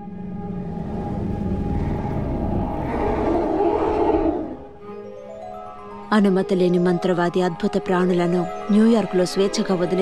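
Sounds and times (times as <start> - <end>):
deep noisy rumble: 0.0 - 3.9.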